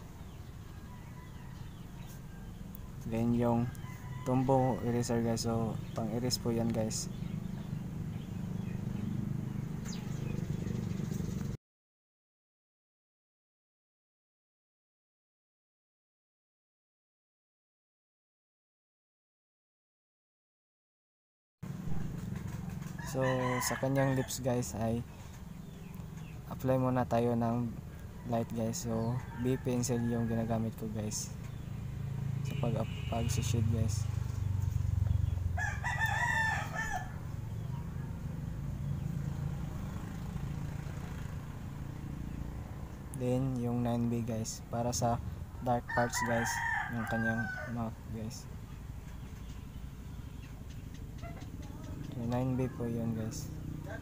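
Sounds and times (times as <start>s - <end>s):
rooster crowing: 0.7s - 5.2s, 22.9s - 24.5s, 28.0s - 30.6s, 35.6s - 38.4s, 45.6s - 48.0s.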